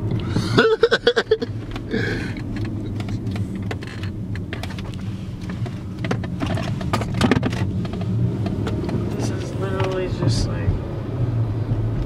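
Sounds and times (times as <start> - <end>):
car road and engine rumble: 0.0 - 12.0
light clicks and knocks: 1.6 - 10.2.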